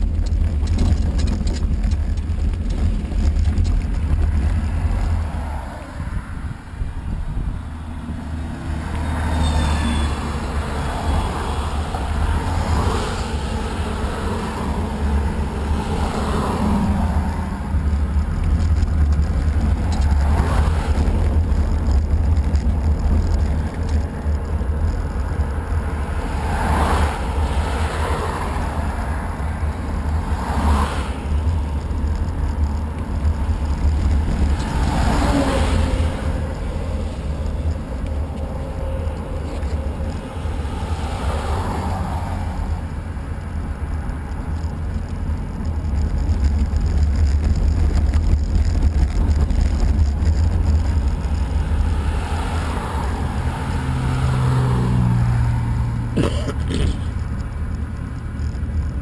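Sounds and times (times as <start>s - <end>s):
wind buffeting microphone: 0.0s - 9.3s, 10.1s - 56.1s
bus passing: 0.0s - 59.0s
cars passing: 0.0s - 59.0s.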